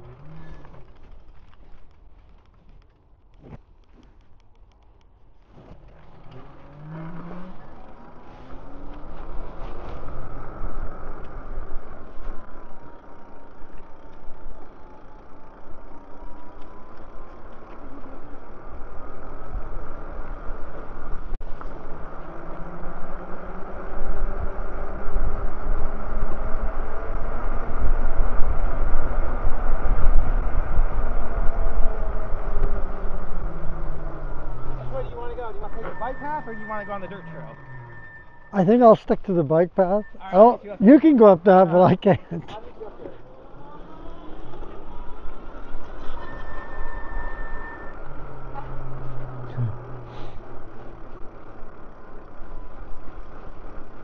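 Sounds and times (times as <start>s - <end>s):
electric bike motor whine: 6.1s - 38.8s, 42.6s - 54.0s.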